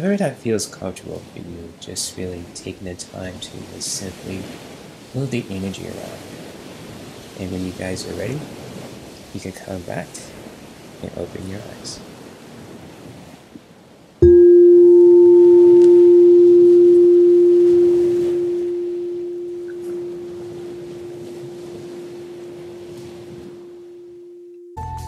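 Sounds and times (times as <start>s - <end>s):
faint steady noise: 0.0s - 24.8s
singing bowl ringing: 14.2s - 24.9s.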